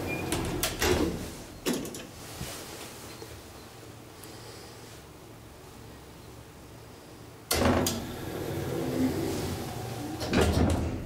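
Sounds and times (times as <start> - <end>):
elevator doors opening: 0.0 - 2.1, 7.5 - 11.0.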